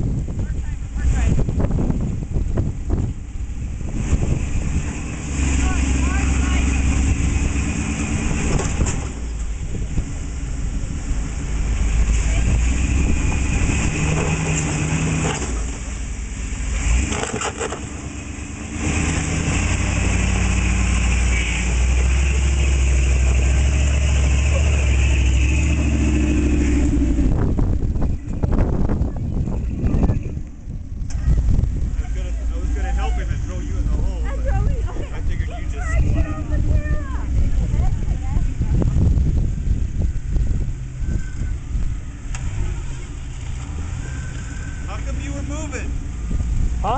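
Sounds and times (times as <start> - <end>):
off-road vehicle engine revving: 0.0 - 46.9.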